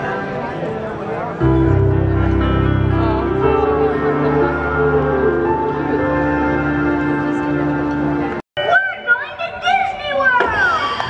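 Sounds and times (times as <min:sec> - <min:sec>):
faint music: 0:00.0 - 0:10.2.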